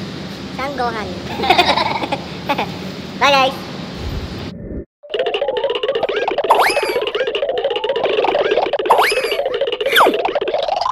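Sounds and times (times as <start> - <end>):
playful music with pitch slides: 5.0 - 10.9.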